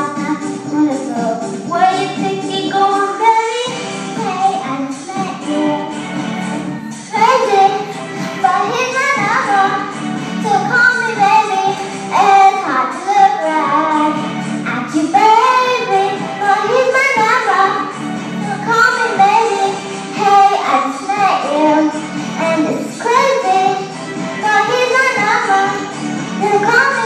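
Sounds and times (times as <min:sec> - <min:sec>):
girl singing into microphone: 0:00.0 - 0:27.0
recorded backing track: 0:00.0 - 0:27.0.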